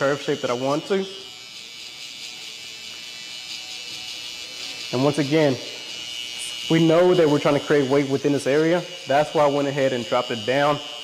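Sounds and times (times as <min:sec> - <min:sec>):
electric hair trimmer buzzing: 0:00.0 - 0:11.0.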